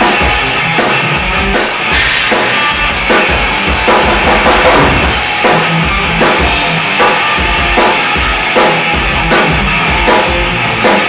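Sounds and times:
bass drum beats: 0.0s - 11.0s
drum and cymbal hits: 0.0s - 11.0s
electric guitar: 0.0s - 11.0s.

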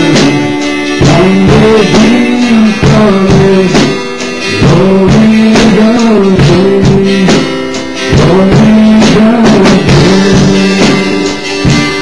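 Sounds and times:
guitar accompaniment: 0.0s - 12.0s
steady beat: 0.0s - 12.0s.

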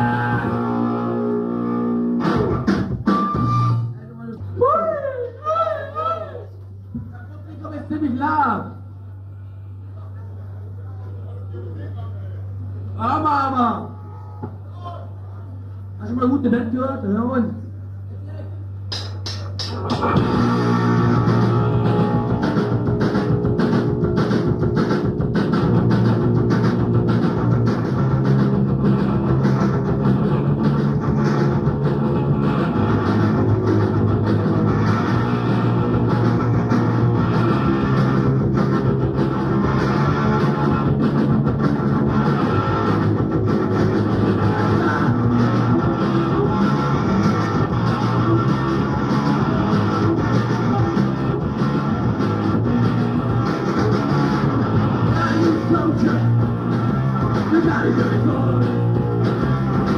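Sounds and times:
punk band playing live: 0.0s - 3.9s, 19.0s - 59.9s.

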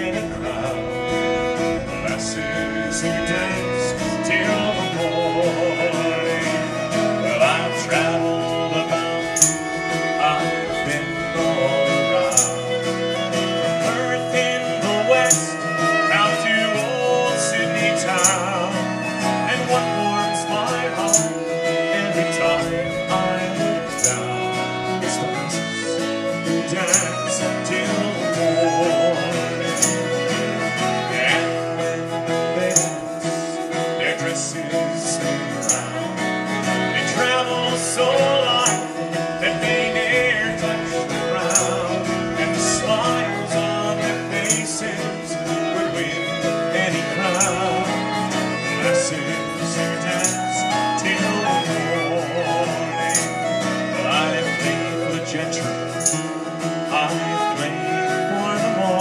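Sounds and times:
fiddle playing lively tune: 0.0s - 59.0s
strummed acoustic guitar: 0.0s - 59.0s.

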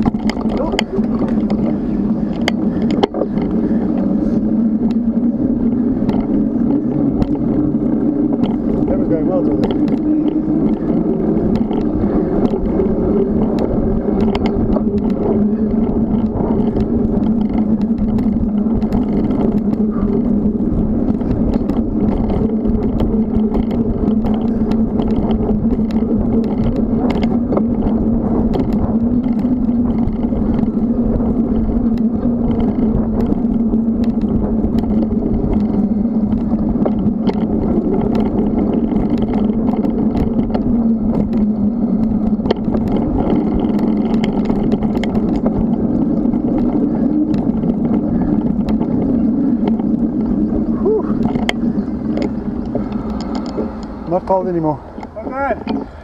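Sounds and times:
bicycle clicks and rattles: 0.0s - 56.0s
bicycle tyres rolling on concrete: 0.0s - 56.0s
wind on microphone: 0.0s - 56.0s.

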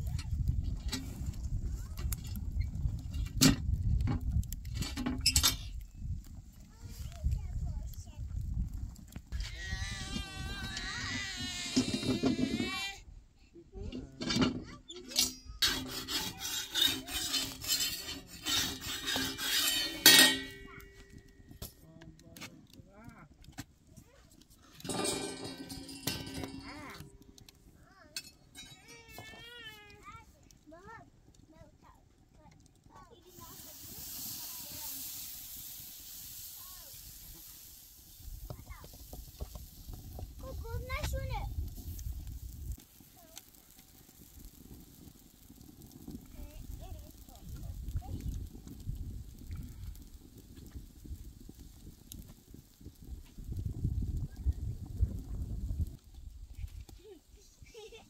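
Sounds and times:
spatula scraping metal griddle: 14.2s - 21.3s, 24.7s - 27.2s
steady hiss: 15.0s - 21.9s, 32.9s - 58.0s.

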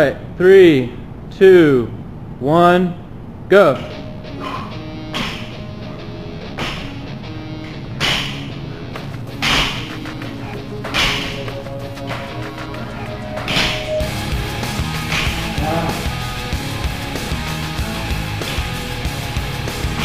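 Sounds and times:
rock music: 3.9s - 20.0s
forced breath: 4.3s - 4.8s
barbell plates hitting mat: 5.1s - 5.6s, 6.5s - 7.0s, 8.0s - 8.5s, 9.4s - 10.0s, 10.8s - 11.4s, 14.9s - 15.8s.

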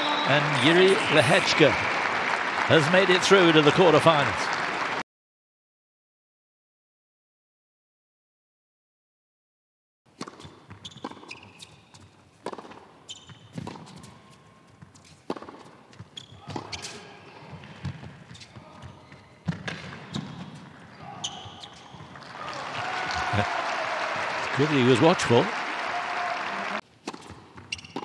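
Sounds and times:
crowd applause: 0.0s - 5.0s, 22.1s - 26.8s
tennis ball hit by racquets: 10.2s - 11.4s, 12.4s - 13.0s, 13.6s - 14.1s, 15.2s - 17.0s, 27.0s - 28.0s.

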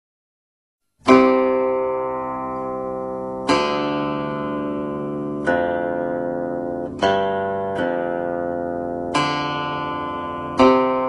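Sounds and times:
plucked string instrument notes: 1.0s - 11.0s.

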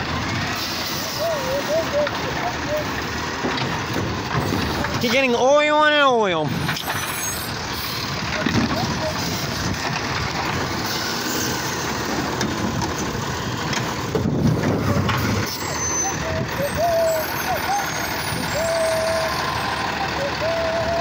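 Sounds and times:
garbage truck engine and hydraulics: 0.0s - 21.0s.

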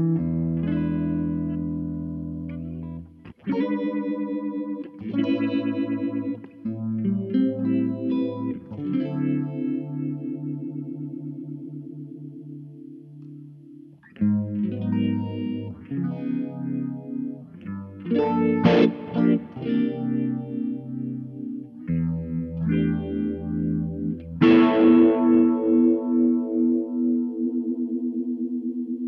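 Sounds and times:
electric guitar chords and notes: 0.0s - 29.0s.

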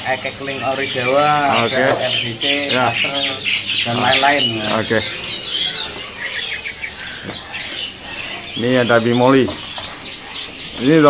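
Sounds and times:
songbirds chirping: 0.0s - 11.0s.

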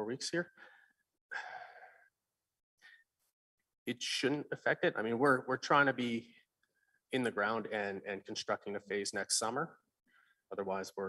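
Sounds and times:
man sighing into microphone: 1.3s - 2.0s.

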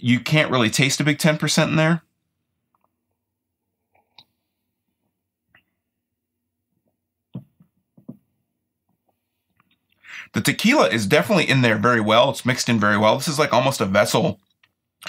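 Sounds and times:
mouth clicks and lip smacks: 9.5s - 10.1s.

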